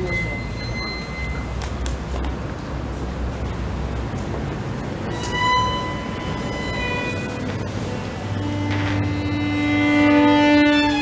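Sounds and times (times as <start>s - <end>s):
solo violin sustained notes: 5.0s - 11.0s.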